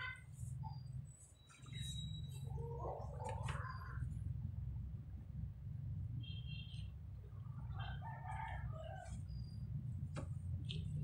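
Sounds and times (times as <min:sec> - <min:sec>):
low steady rumble: 0:00.2 - 0:11.0
faint bird chirps: 0:00.4 - 0:04.2.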